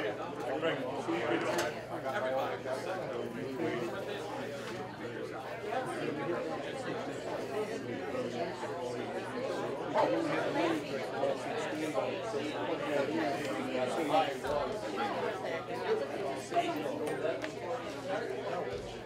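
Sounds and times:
overlapping chatter: 0:00.0 - 0:19.0.

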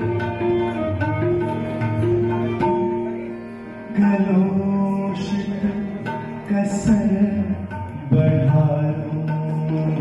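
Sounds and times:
instrumental accompaniment: 0:00.0 - 0:10.0
man singing: 0:03.9 - 0:10.0.

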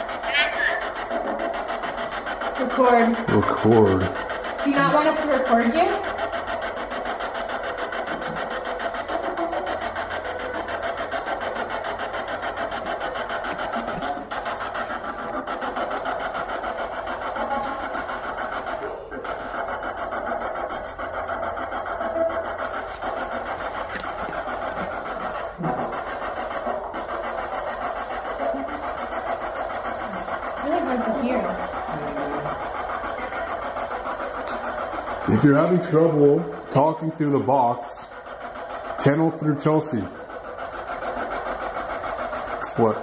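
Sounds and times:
stuttering radio static: 0:00.0 - 0:43.0.

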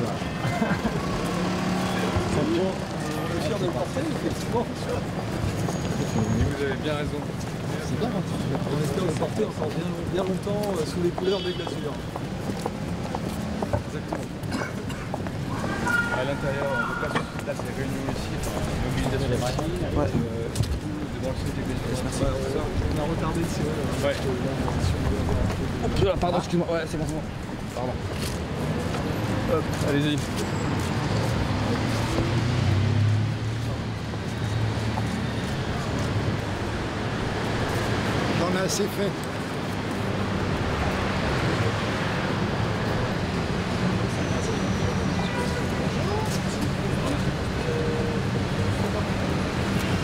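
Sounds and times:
crowd chatter: 0:00.0 - 0:50.0
traffic noise: 0:00.0 - 0:50.0
shoe soles clicking on pavement: 0:07.2 - 0:22.1, 0:22.7 - 0:42.2.

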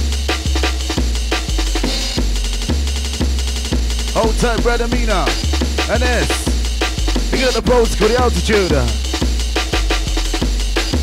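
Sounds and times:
deep bass line: 0:00.0 - 0:11.0
drum hits: 0:00.0 - 0:11.0.

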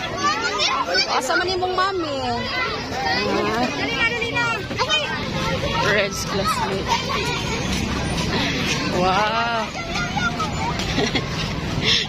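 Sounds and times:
children talking: 0:00.0 - 0:12.0
street traffic noise: 0:00.0 - 0:12.0.

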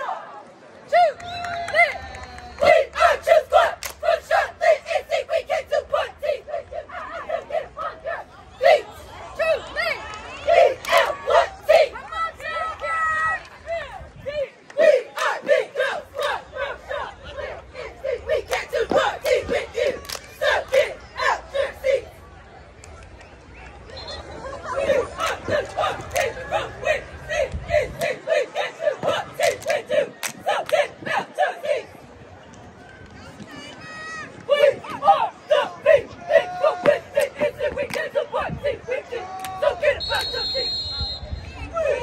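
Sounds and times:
cheerleaders shouting in unison: 0:00.0 - 0:22.1, 0:24.4 - 0:32.0, 0:33.8 - 0:40.4.

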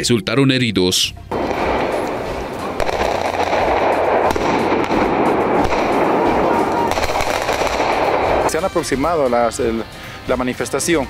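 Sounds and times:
crowd noise: 0:01.3 - 0:08.5
firecrackers banging: 0:01.3 - 0:09.2.

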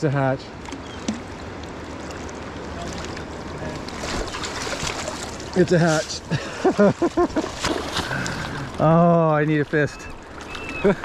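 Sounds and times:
fish thrashing and splashing: 0:00.7 - 0:08.8
river running over gravel: 0:00.8 - 0:11.0.

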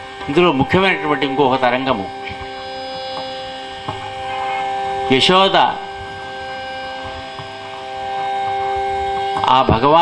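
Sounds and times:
steady hum of held tones: 0:00.0 - 0:10.0.

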